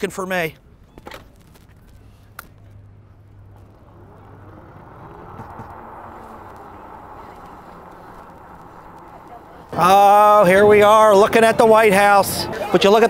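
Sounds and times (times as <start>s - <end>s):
faint street ambience: 0.0s - 13.0s.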